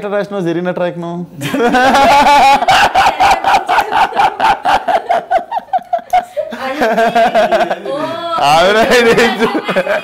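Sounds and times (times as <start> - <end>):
man laughing loudly: 1.4 - 8.0, 8.9 - 10.0.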